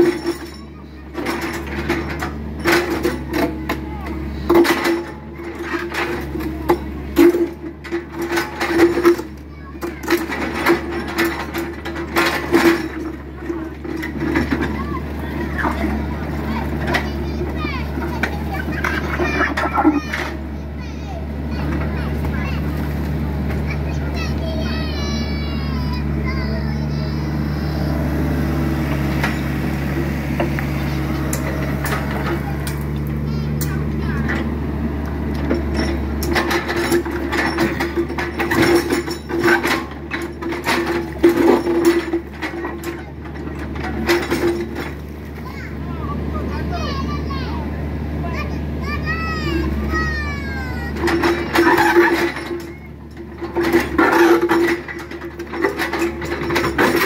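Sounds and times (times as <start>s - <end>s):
children chattering: 0.0s - 57.0s
diesel engine running: 0.0s - 57.0s
bucket scraping concrete and rubble: 7.2s - 20.5s, 50.9s - 57.0s.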